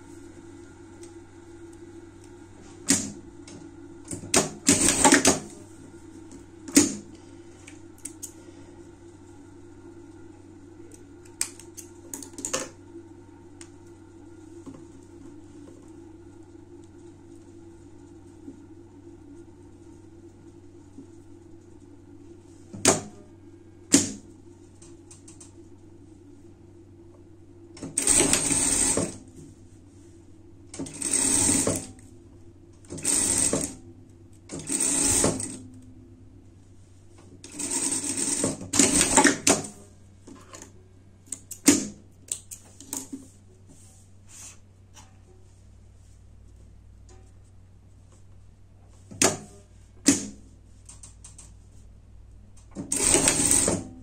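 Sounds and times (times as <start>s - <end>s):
steady low hum: 0.0s - 54.0s
sewing machine stitching: 4.1s - 5.6s, 27.8s - 29.2s, 30.8s - 32.0s, 32.9s - 33.8s, 34.5s - 35.7s, 37.4s - 39.8s, 52.8s - 53.9s.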